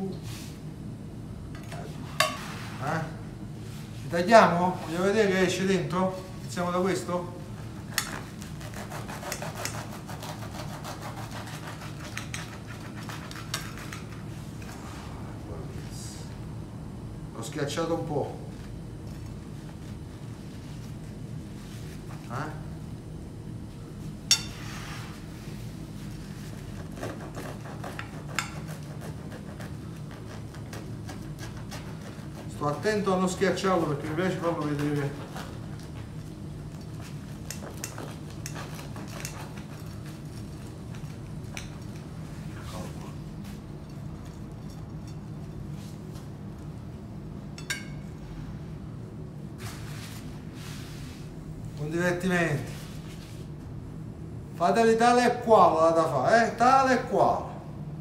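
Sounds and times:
steady low hum: 0:00.0 - 0:58.0
plates scraping on steel counter: 0:02.1 - 0:02.8
knife sawing through food: 0:08.0 - 0:14.2, 0:26.6 - 0:32.9, 0:37.8 - 0:40.2
knife clinking on plate: 0:47.6 - 0:48.0.

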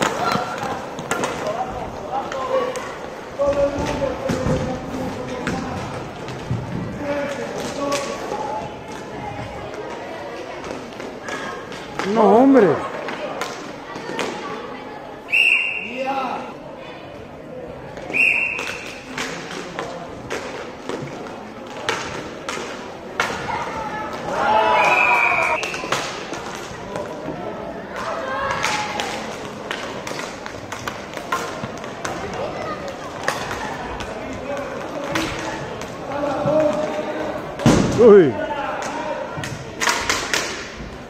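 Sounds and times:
hockey sticks clacking: 0:00.0 - 0:09.9, 0:10.6 - 0:12.4, 0:13.0 - 0:14.4, 0:18.2 - 0:27.3, 0:27.9 - 0:37.8, 0:38.7 - 0:41.0
people shouting in a hall: 0:23.4 - 0:26.0, 0:27.8 - 0:29.3.

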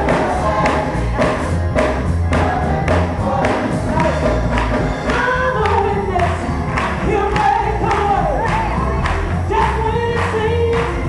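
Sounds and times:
deep bass accompaniment: 0:00.0 - 0:11.0
gospel choir singing: 0:00.0 - 0:11.0.

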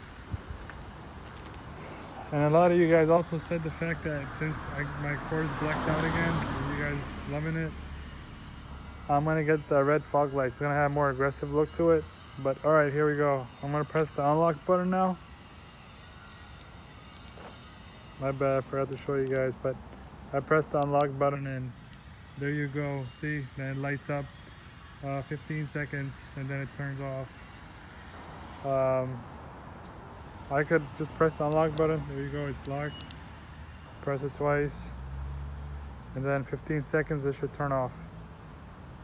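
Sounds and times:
faint outdoor background noise: 0:00.0 - 0:39.0.

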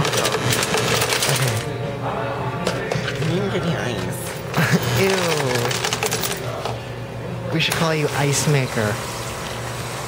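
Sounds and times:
ice cubes clattering into cup: 0:04.7 - 0:06.4.

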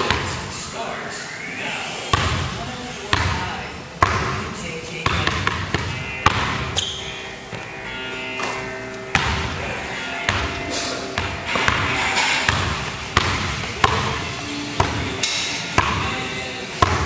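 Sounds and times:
basketball bouncing on hardwood floor: 0:03.1 - 0:03.4, 0:04.0 - 0:04.4, 0:05.0 - 0:06.6, 0:09.1 - 0:09.5, 0:11.2 - 0:14.2.

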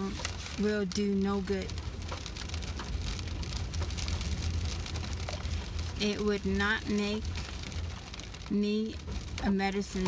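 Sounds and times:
low rumble in car cabin: 0:00.0 - 0:10.0.

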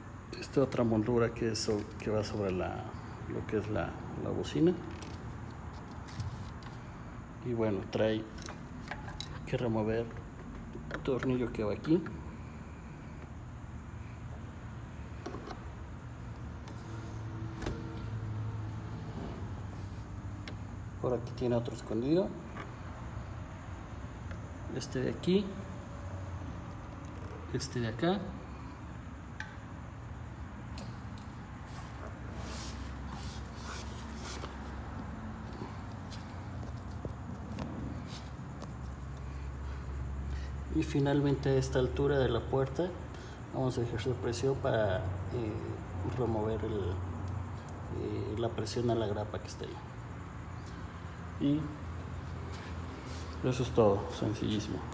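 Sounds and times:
steady low hum: 0:00.0 - 0:54.9.

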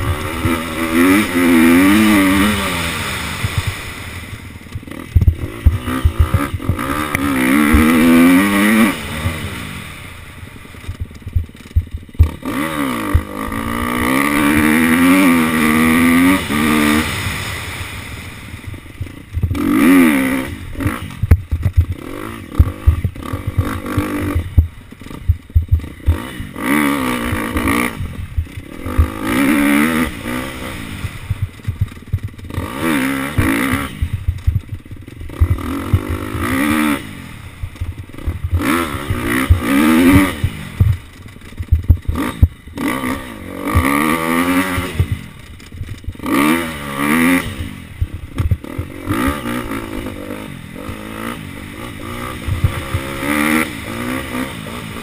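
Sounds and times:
dirt bike engine revving: 0:00.0 - 0:55.0
bike knocks and rattles: 0:04.7 - 0:09.4, 0:10.8 - 0:13.4, 0:19.0 - 0:19.9, 0:20.8 - 0:26.6, 0:31.0 - 0:36.8, 0:37.6 - 0:42.9, 0:48.0 - 0:49.6, 0:52.3 - 0:53.6.

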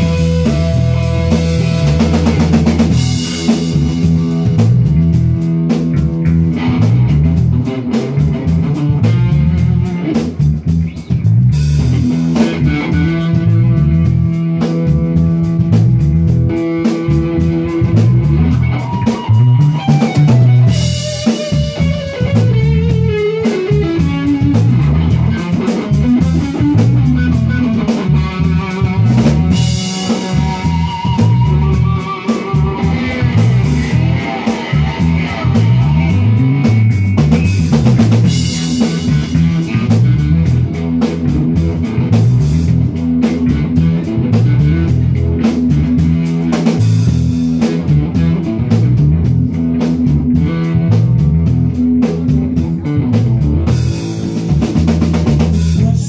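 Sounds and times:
drum kit: 0:00.0 - 0:56.0
electric bass line: 0:00.0 - 0:56.0
electric guitar: 0:00.0 - 0:56.0.

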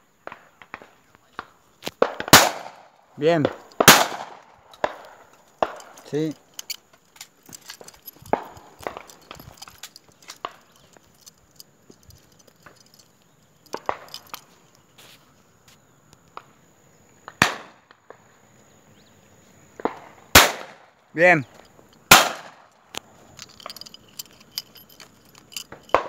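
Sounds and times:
loud shotgun shots: 0:02.0 - 0:05.0, 0:17.4 - 0:17.8, 0:20.3 - 0:20.8, 0:22.1 - 0:22.6.

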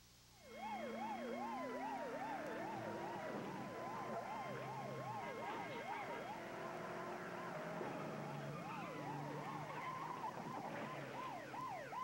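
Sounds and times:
police siren yelping: 0:00.4 - 0:12.0.

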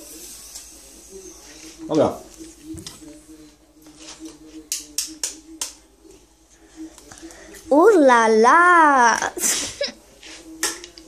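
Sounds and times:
kitchen clicks and taps: 0:04.7 - 0:05.8, 0:10.6 - 0:11.0.

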